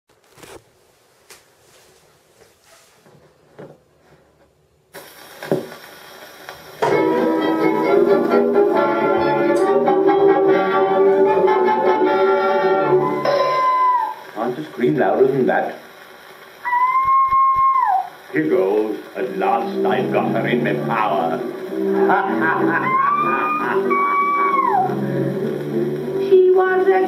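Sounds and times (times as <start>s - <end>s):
record surface noise hiss: 0.1s - 27.0s
band playing: 6.8s - 14.4s, 18.4s - 27.0s.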